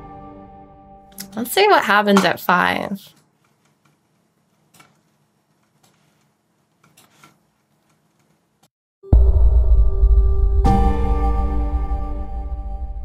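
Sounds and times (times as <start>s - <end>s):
computer mouse clicks: 4.7s - 8.4s.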